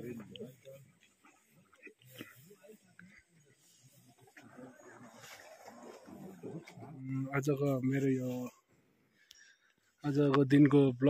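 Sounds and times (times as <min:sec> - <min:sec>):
faint indistinct voices: 0:00.0 - 0:07.1.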